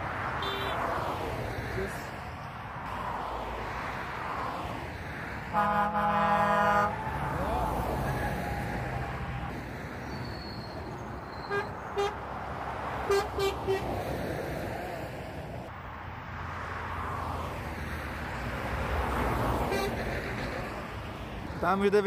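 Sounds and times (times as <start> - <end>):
motorway traffic passing: 0.0 - 22.0
vehicle horn toots: 0.4 - 0.8, 5.5 - 7.0, 11.3 - 12.2, 13.1 - 13.9.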